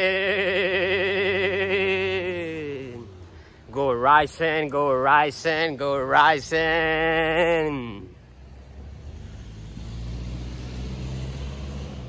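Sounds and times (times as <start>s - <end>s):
vehicle driving past: 7.5s - 12.0s.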